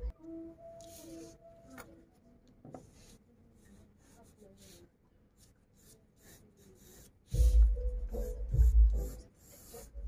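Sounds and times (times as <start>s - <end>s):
pencil scratching on paper: 2.8s - 10.0s.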